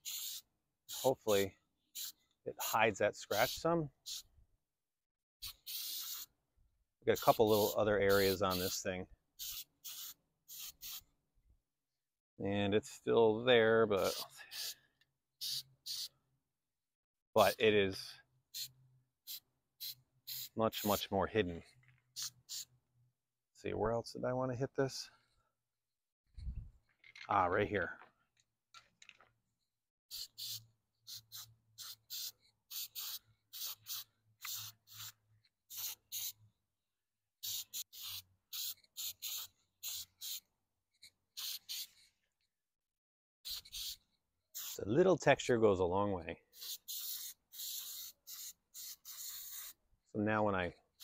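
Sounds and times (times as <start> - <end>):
aerosol can spritzes: 5.4 - 6.3, 9.4 - 11.0, 30.1 - 36.4, 37.4 - 40.4, 46.6 - 49.8.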